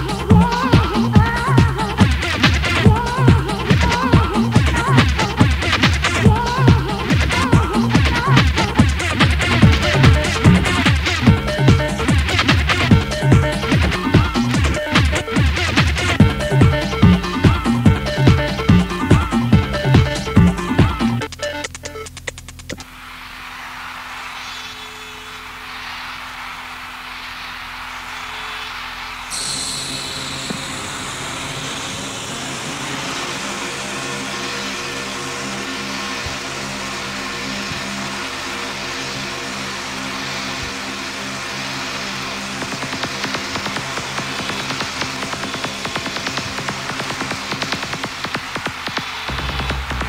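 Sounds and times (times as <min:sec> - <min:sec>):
fast percussion ticking: 0:00.0 - 0:22.9
wash of noise: 0:22.9 - 0:34.4
sustained synth chords: 0:28.2 - 0:50.0.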